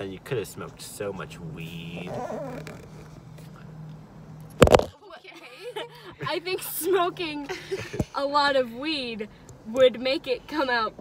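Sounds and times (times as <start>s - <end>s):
low hum inside car: 0.0s - 11.0s.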